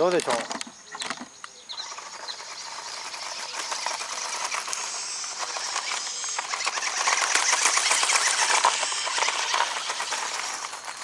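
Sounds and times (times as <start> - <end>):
gravel clicking: 0.0 - 11.0
tyres hissing on gravel: 1.7 - 11.0.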